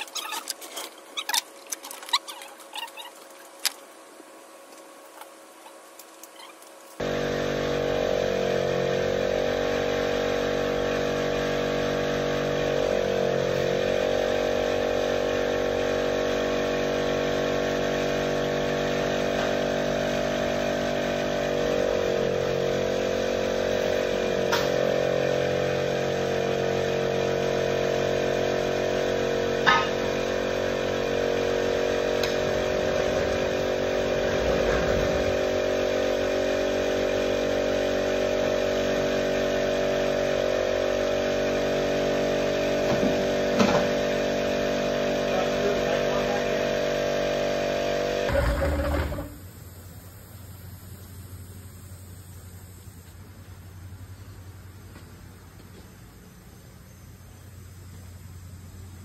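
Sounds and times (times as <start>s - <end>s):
diesel engine running: 6.8s - 50.8s.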